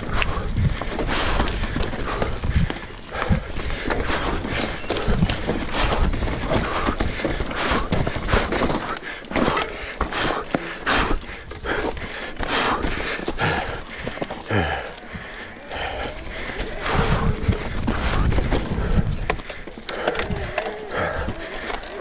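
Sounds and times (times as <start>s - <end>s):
wind rumbling on microphone: 0.0s - 8.7s, 15.7s - 21.4s
footsteps on rocky ground: 0.0s - 22.0s
person gasping for breath: 0.0s - 22.0s.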